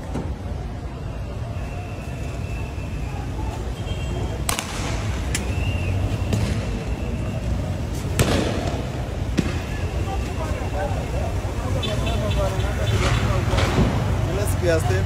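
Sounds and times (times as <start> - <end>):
street and crowd rumble: 0.0 - 15.0.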